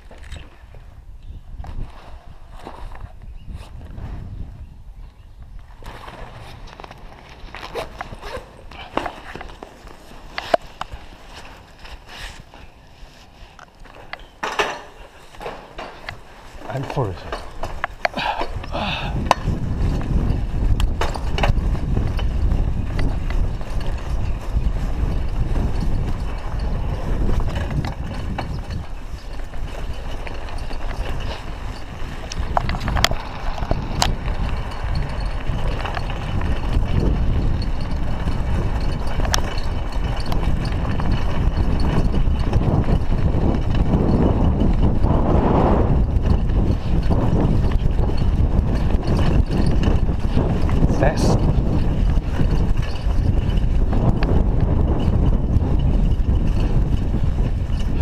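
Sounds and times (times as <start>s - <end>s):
bicycle rattles: 0.0s - 58.0s
bicycle tyre rumble: 0.0s - 58.0s
wind buffeting microphone: 0.0s - 58.0s.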